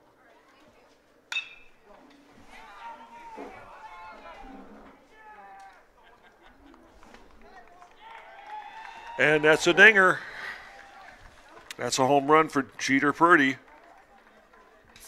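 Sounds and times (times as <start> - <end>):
metal bat hitting ball: 1.3 - 1.8
spectators shouting and cheering: 2.4 - 15.0.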